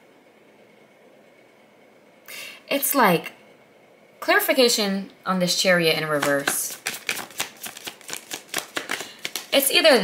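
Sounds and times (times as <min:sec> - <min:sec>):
tarot cards being shuffled: 0:06.1 - 0:09.8.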